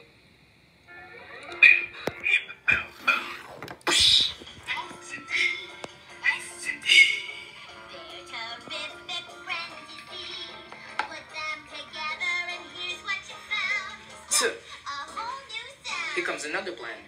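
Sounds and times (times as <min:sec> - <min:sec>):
cartoon song through phone speaker: 0:00.9 - 0:16.4.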